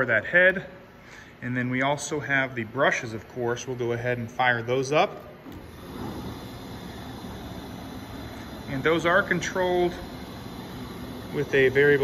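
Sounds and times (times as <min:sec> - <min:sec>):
brush sander whirring: 0:05.6 - 0:12.0.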